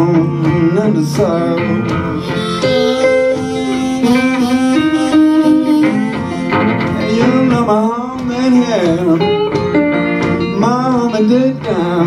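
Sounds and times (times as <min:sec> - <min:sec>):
acoustic blues guitar: 0:00.0 - 0:12.0.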